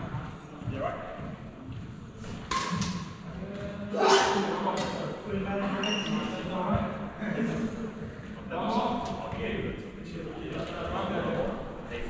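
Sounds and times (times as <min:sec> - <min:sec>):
racket striking shuttlecock: 0:02.2 - 0:03.1.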